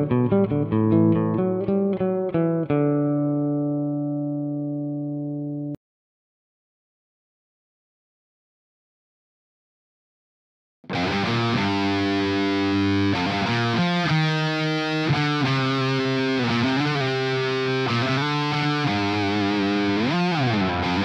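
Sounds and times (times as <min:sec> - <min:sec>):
distorted electric guitar riff: 0:10.9 - 0:21.0.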